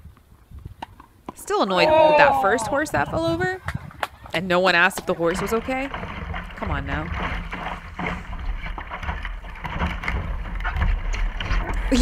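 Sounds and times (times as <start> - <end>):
wind buffeting camera: 0.0 - 12.0
water rushing along hull: 1.8 - 12.0.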